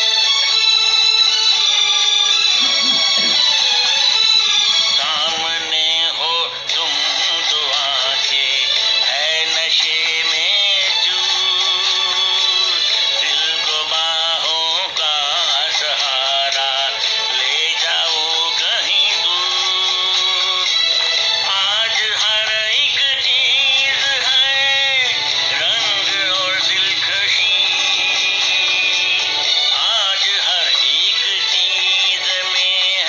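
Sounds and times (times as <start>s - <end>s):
instrumental backing: 0.0s - 33.0s.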